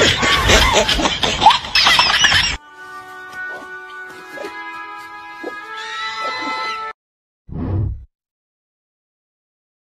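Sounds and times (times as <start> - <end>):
music with long held notes: 2.6 - 6.9.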